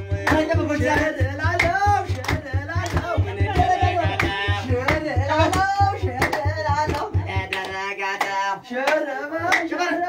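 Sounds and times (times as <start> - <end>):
low regular beat: 0.0 - 7.8
group singing: 0.0 - 10.0
rhythmic handclapping: 0.0 - 10.0.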